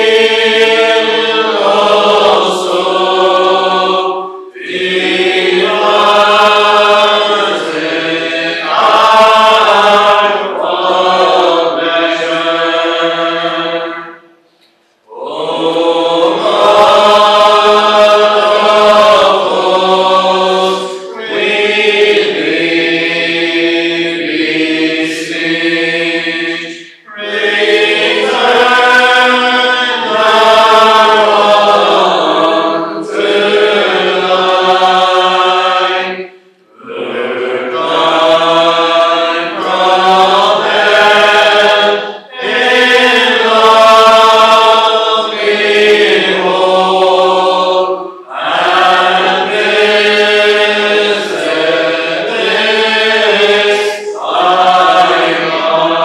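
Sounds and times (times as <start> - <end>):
congregation singing unaccompanied: 0.0 - 56.0.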